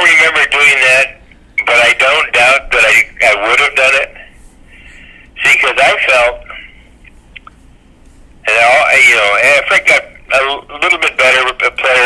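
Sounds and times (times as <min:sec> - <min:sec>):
man talking over telephone: 0:00.0 - 0:04.4, 0:05.4 - 0:06.8, 0:08.4 - 0:12.0.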